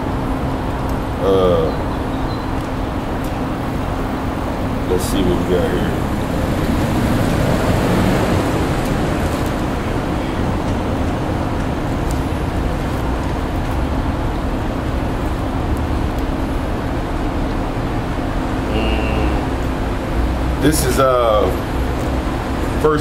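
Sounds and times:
cars passing on street: 1.8 - 23.0.

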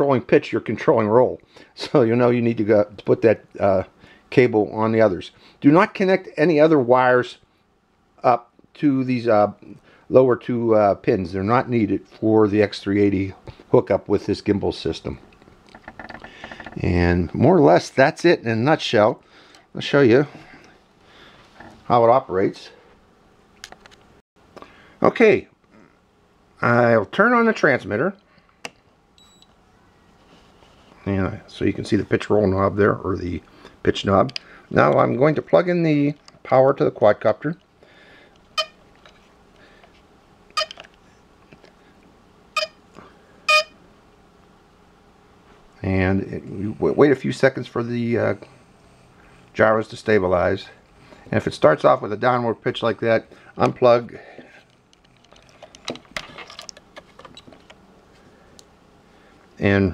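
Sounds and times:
high transmitter beep: 38.6 - 38.8, 43.5 - 43.8
handling noises: 53.3 - 58.3.

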